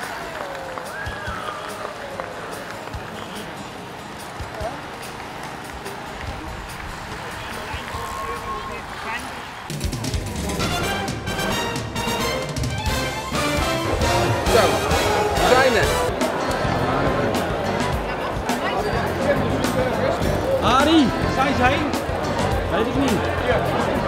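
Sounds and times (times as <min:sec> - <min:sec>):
cyclists riding past: 0:00.0 - 0:10.6
street noise: 0:00.0 - 0:24.0
music with steady beat: 0:09.7 - 0:24.0
scattered voices: 0:13.6 - 0:24.0.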